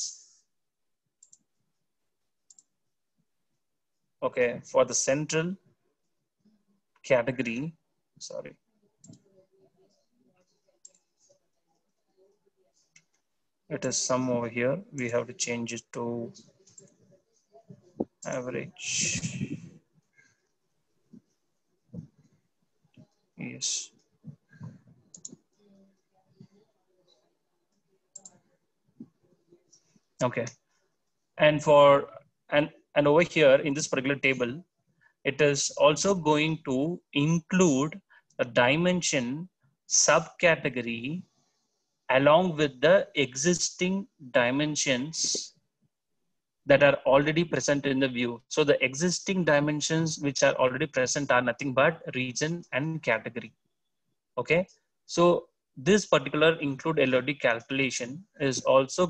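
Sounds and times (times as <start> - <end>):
computer mouse clicks: 1.2 - 1.5, 24.0 - 25.4, 28.1 - 28.4.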